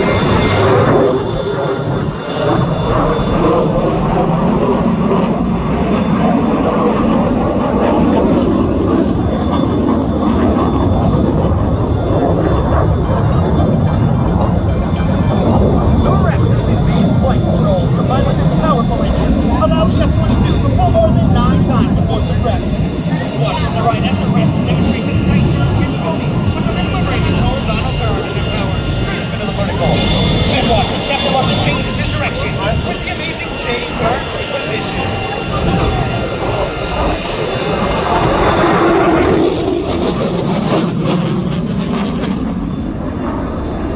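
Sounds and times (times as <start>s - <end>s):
crowd voices: 0.0s - 43.9s
jet engines rushing: 0.0s - 43.9s.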